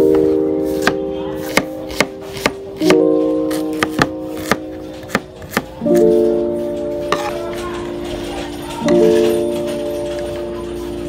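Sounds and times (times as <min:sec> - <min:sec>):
background music plucked chords: 0:00.0 - 0:11.0
knife chopping on wooden board: 0:00.8 - 0:05.8.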